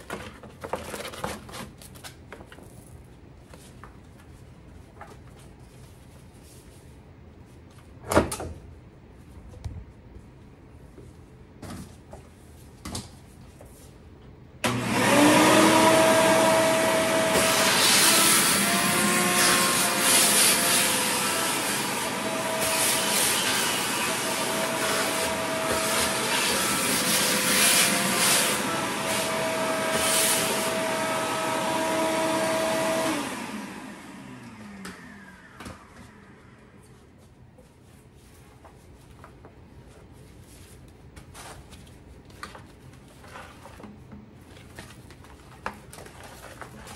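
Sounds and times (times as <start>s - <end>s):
vacuum cleaner running: 14.6s - 37.0s.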